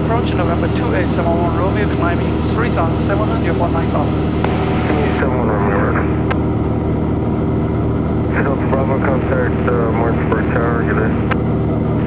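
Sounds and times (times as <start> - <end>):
propeller plane engine droning: 0.0 - 12.0.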